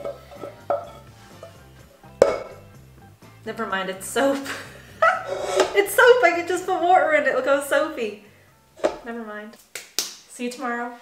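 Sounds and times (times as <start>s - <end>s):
wooden spoon striking steel pot: 0.0s - 2.7s
background music: 0.0s - 10.3s.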